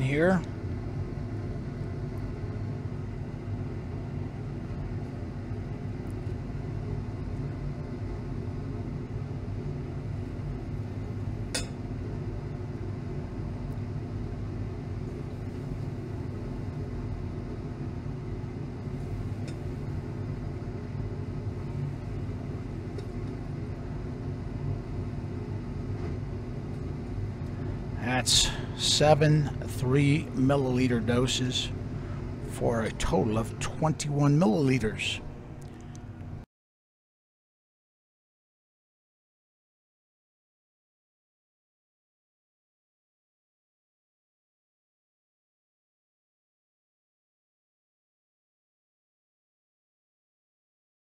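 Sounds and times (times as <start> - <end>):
low machine hum: 0.0 - 36.5.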